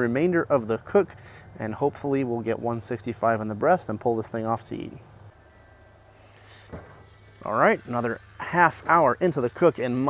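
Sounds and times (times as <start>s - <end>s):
faint low grill hum: 0.0s - 10.0s.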